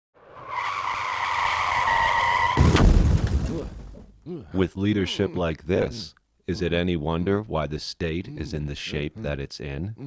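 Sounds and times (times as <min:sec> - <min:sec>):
car tires screeching: 0:00.2 - 0:02.8
loud crash: 0:01.4 - 0:04.2.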